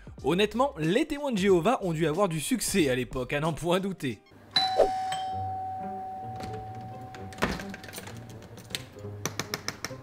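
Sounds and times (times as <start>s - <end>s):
soft background music: 0.0s - 10.0s
doorbell chime: 4.6s - 8.4s.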